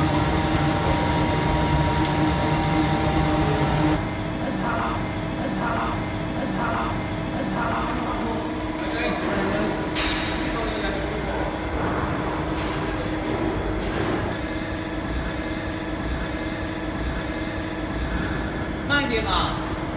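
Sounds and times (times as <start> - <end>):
machine hum: 0.0 - 19.9.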